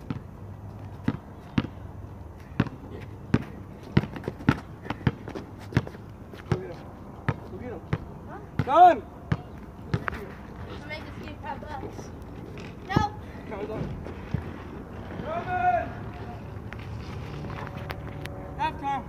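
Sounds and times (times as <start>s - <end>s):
basketball bouncing on asphalt: 0.0s - 17.7s
person shouting: 15.2s - 16.0s.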